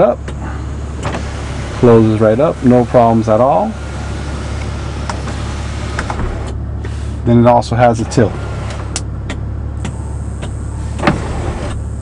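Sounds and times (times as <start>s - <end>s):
vehicle cabin mechanical hum: 0.0s - 12.0s.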